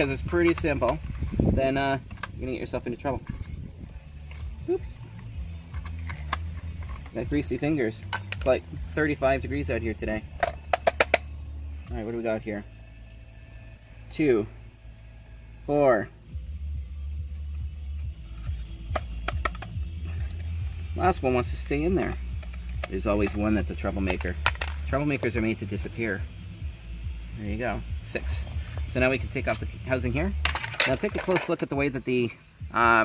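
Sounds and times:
low steady rumble: 0.0s - 33.0s.

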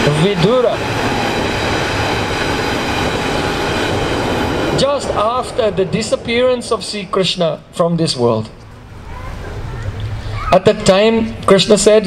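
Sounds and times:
speech: 0.0s - 0.8s, 4.8s - 8.5s, 9.6s - 12.0s
loud rushing noise with held tones: 0.0s - 12.0s.

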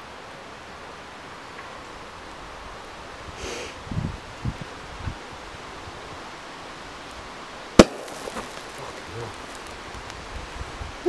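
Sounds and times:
wind in trees: 0.0s - 11.0s
campfire bang: 7.7s - 10.1s.

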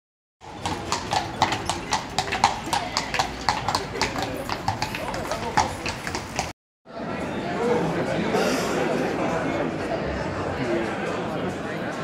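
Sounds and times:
hooves clip-clopping on cobblestones: 0.4s - 6.5s.

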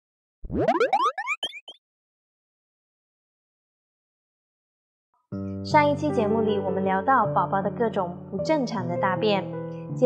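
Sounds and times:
upward-sliding boing tones: 0.5s - 1.8s.

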